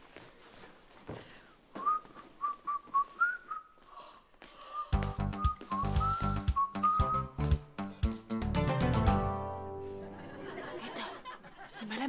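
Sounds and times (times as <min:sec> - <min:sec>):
whistled tune: 0:01.8 - 0:03.8, 0:04.7 - 0:07.6
background music with steady beat: 0:04.9 - 0:10.2.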